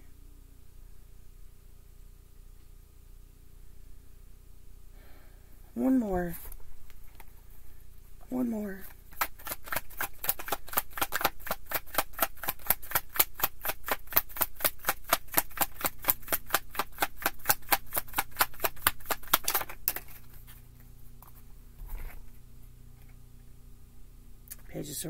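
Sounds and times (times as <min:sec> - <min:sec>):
cards being shuffled: 0:08.8 - 0:22.4.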